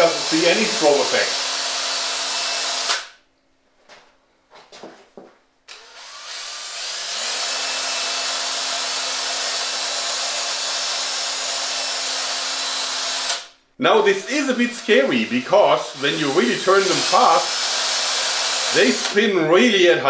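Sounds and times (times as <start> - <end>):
cordless drill whirring: 0.0 - 3.1, 5.7 - 13.5, 14.2 - 19.2.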